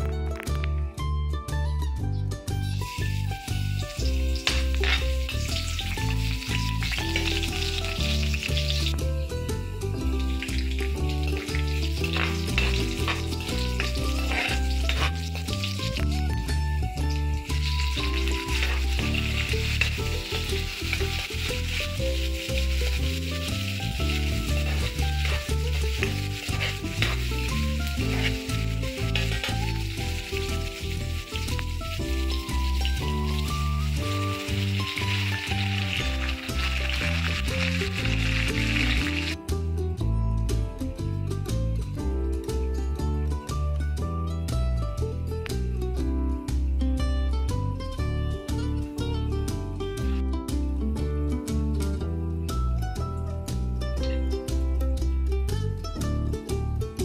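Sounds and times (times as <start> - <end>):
vegetables sizzling in hot oil: 2.7 - 39.4
metal spoon scraping a pan: 3.8 - 8.9, 10.2 - 16.1, 17.1 - 39.4.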